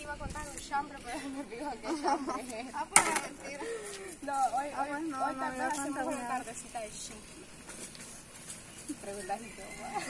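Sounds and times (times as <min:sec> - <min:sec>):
woman giggling: 0:01.8 - 0:02.6.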